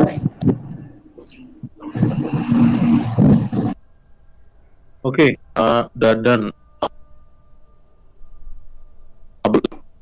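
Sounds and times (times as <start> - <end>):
garbled voice over online call: 0.0 - 3.8, 9.4 - 9.8.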